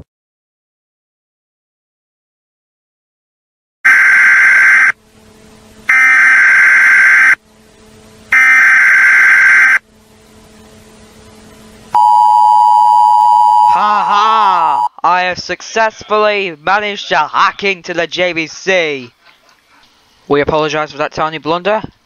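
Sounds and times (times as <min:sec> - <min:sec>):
harsh electronic buzzes: 0:03.9 - 0:12.4
steady electronic tone: 0:03.9 - 0:13.8.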